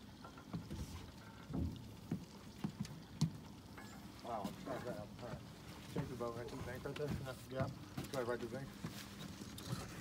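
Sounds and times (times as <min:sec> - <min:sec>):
soft knocks on a small boat: 0:00.5 - 0:03.4.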